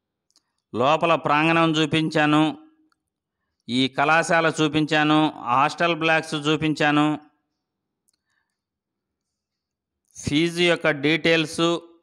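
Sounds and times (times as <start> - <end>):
man speaking: 0.7 - 2.7, 3.7 - 7.4, 10.2 - 12.0.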